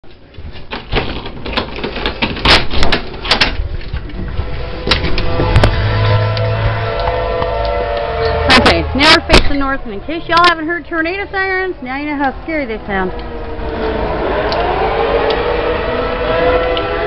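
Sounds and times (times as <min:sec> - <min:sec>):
tornado siren wailing: 0:04.1 - 0:17.0.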